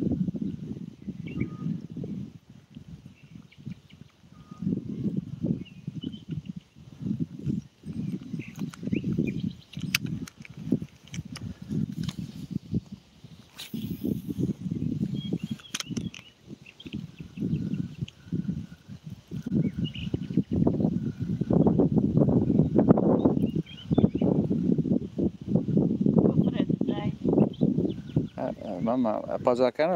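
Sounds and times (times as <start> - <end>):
wind on microphone: 0.0 - 29.9
faint bird chirps: 1.1 - 2.0, 3.2 - 6.8, 19.5 - 21.7.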